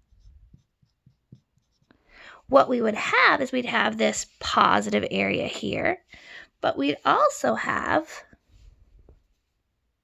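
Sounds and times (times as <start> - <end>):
marker writing on whiteboard: 0.0 - 2.0.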